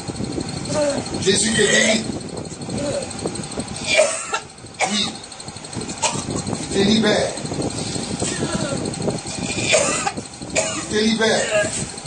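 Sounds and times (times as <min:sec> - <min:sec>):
person coughing: 0:03.8 - 0:05.2, 0:09.5 - 0:11.8.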